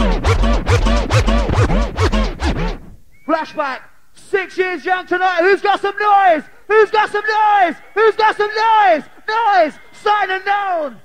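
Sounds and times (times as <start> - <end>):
hardcore dance track: 0.0 - 2.9
deep bass line: 0.0 - 3.0
record scratching: 0.0 - 3.0.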